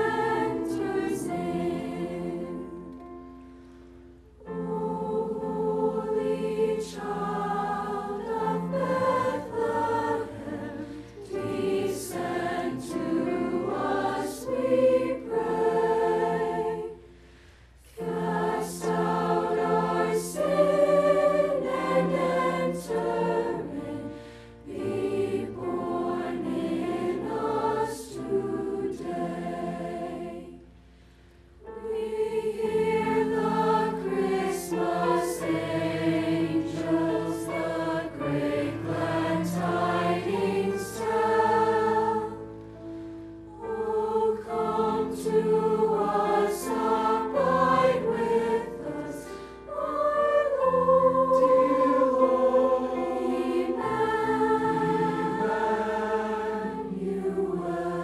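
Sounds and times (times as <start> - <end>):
children's choir singing chords: 0.0 - 3.4, 4.4 - 30.8, 31.6 - 58.0.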